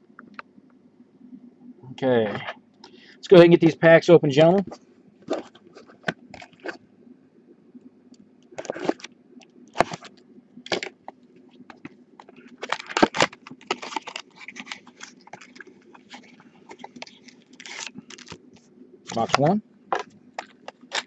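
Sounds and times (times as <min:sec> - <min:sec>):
cardboard crackling: 0:11.8 - 0:18.5
cardboard boxes being torn open: 0:12.6 - 0:15.5.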